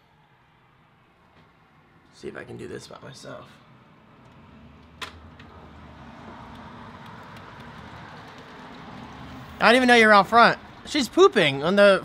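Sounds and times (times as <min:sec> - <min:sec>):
distant road traffic rumble: 0:00.9 - 0:12.0.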